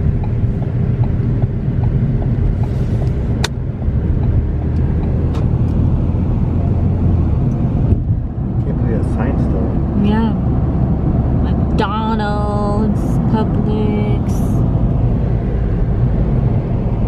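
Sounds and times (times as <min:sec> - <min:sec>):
car engine and road noise: 0:00.0 - 0:17.0.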